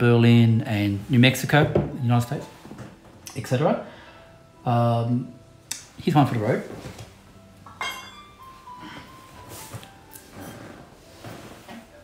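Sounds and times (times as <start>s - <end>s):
glass bottles clinking: 7.7s - 9.2s.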